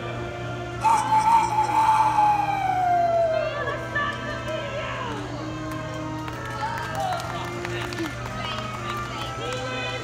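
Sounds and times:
man calling through cupped hands: 0.8s - 3.1s.

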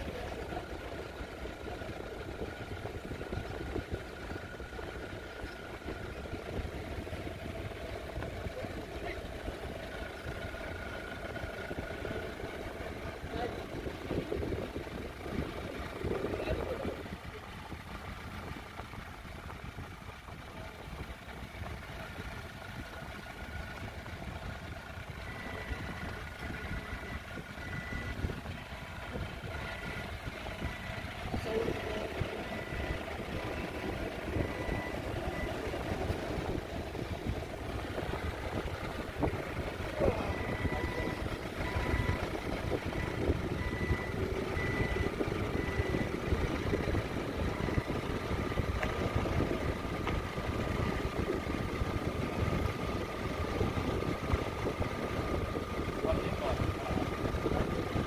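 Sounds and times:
forklift engine running: 0.0s - 58.0s
back-up alarm beeps: 25.2s - 36.5s, 38.1s - 49.2s.

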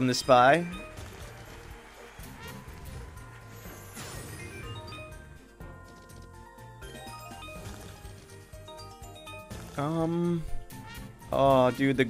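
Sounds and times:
slot game music: 0.0s - 12.0s.

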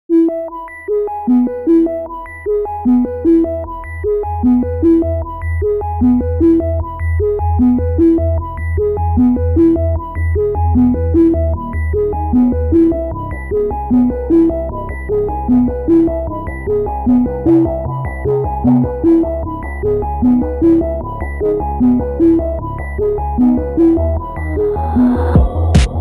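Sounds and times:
electronic synthesizer music: 0.1s - 26.0s.

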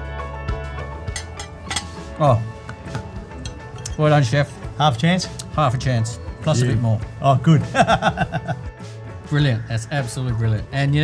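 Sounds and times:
music with steady beat: 0.1s - 5.6s.

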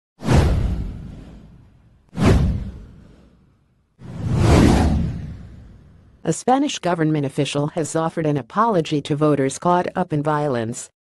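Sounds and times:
deep low boom: 0.2s - 3.5s, 4.1s - 6.2s
whoosh sound effect: 2.2s - 6.1s.

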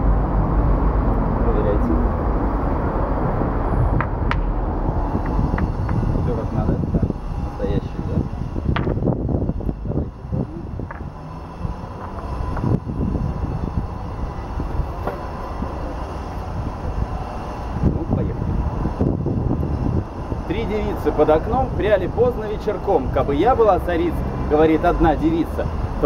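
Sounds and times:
low street rumble: 0.0s - 26.0s.

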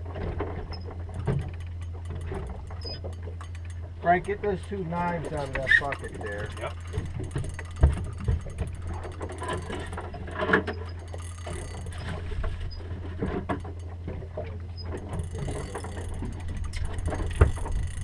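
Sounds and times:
steady low rumble: 0.0s - 18.0s
fishing reel being cranked: 2.7s - 12.2s, 15.0s - 18.0s.

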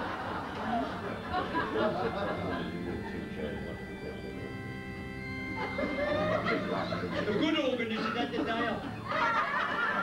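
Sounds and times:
held organ chord: 0.0s - 10.0s
voices: 0.6s - 4.7s.

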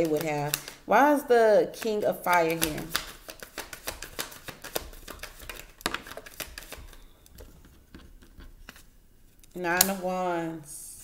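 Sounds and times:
cards being shuffled: 0.0s - 0.8s, 1.7s - 8.9s.

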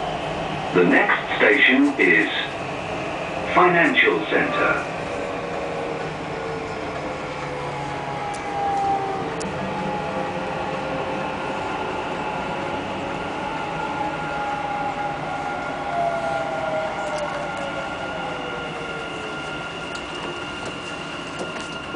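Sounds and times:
train rumbling on track: 0.0s - 21.9s.

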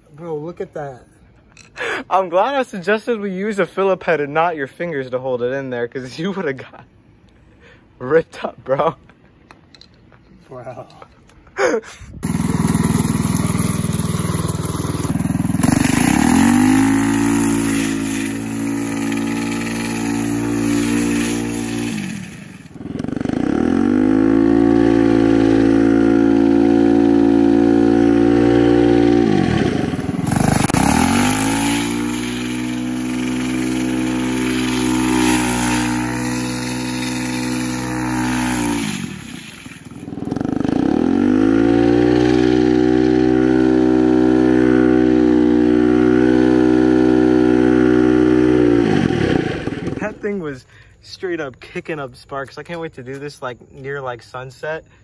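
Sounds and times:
go-kart engine revving: 12.2s - 50.2s.

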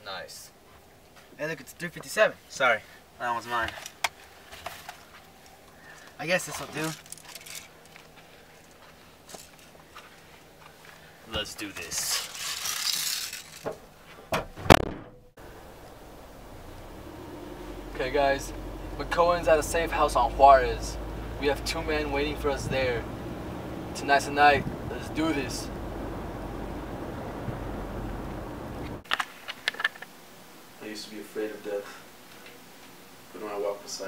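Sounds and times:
sharp knocks: 14.3s - 15.2s
car interior rumble: 14.7s - 29.1s.

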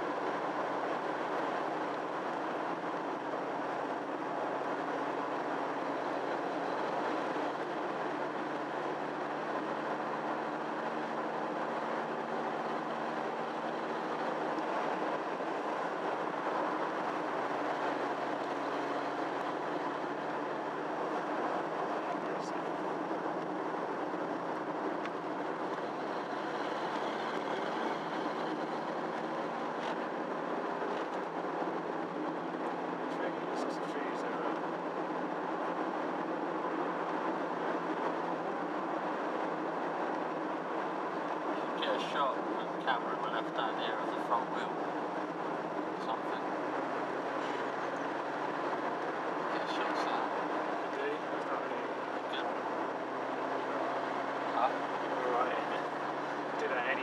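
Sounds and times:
car engine drone: 0.0s - 57.0s.

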